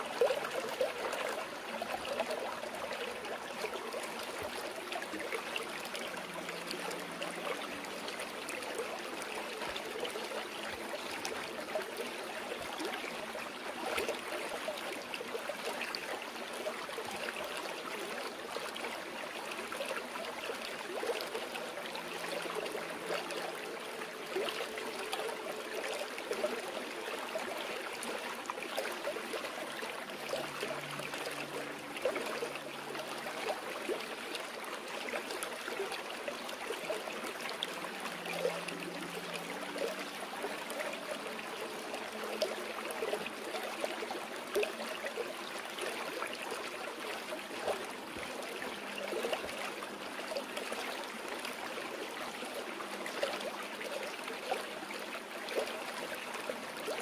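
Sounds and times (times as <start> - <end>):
stream babbling over rocks: 0.0 - 57.0.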